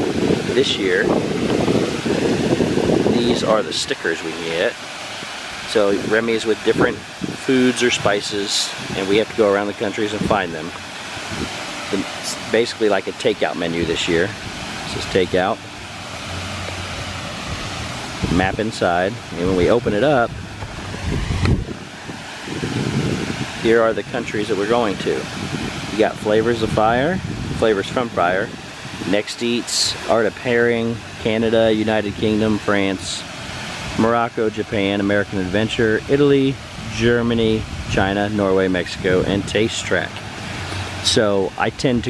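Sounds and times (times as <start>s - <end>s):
wind buffeting microphone: 0.0s - 32.4s, 34.8s - 42.0s.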